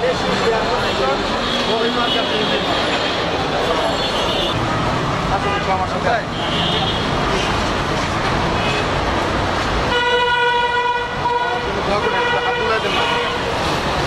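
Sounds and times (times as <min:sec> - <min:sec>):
road traffic noise: 0:00.0 - 0:14.0
street crowd chatter: 0:00.0 - 0:14.0
vehicle horn blast: 0:09.9 - 0:13.4.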